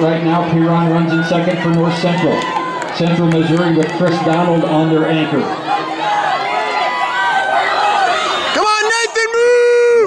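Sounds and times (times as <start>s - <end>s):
long held shout: 5.6s - 10.0s
excited speech: 8.5s - 10.0s.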